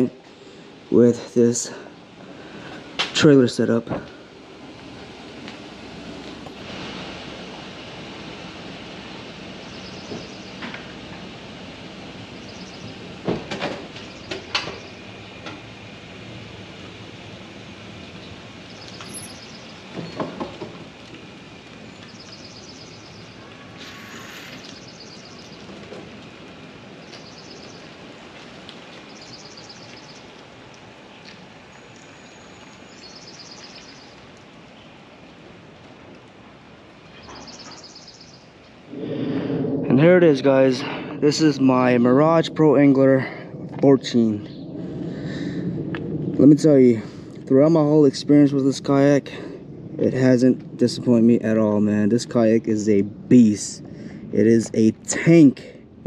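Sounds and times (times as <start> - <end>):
birds chirping: 8.8 - 15.7, 17.9 - 35.4, 36.5 - 42.0, 44.1 - 44.8.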